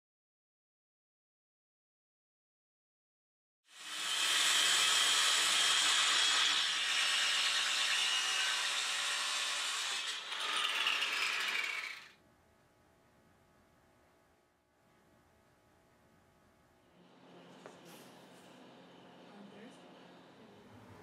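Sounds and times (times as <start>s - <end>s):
power tool hissing whir: 3.7s - 12.1s.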